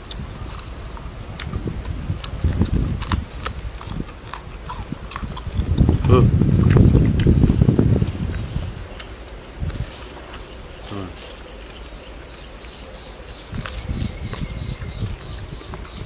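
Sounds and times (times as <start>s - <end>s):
pods snapping and being bitten: 0.0s - 7.3s
muffled chewing: 0.0s - 16.0s.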